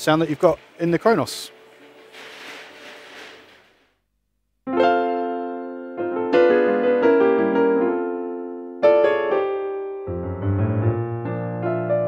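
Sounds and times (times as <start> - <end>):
piano chord ringing: 4.7 - 12.0.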